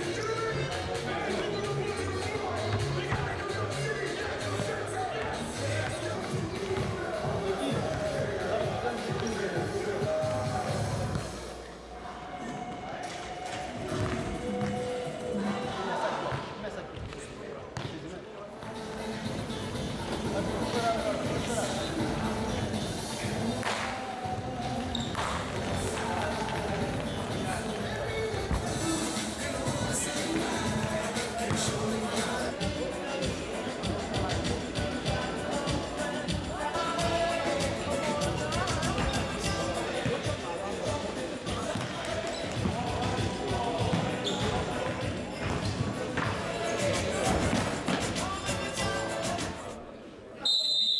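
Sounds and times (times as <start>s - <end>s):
music: 0.0s - 16.5s, 18.6s - 49.8s
people talking: 0.0s - 50.7s
voices: 0.0s - 50.9s.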